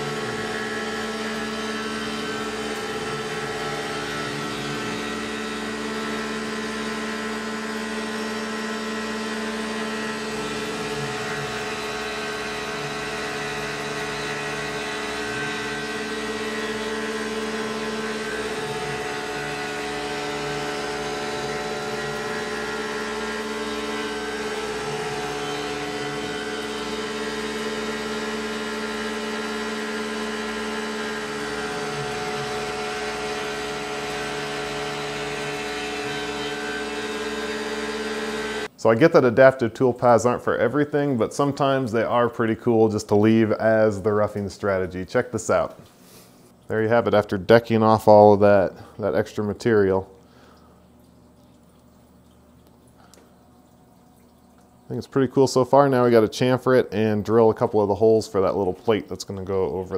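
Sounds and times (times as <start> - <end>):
milling machine whine: 0.0 - 59.9.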